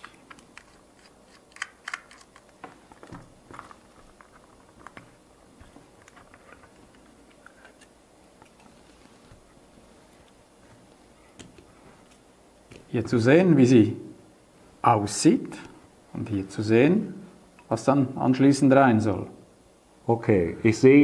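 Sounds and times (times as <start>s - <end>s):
screwdriver prying plastic clicks: 0.0s - 2.6s.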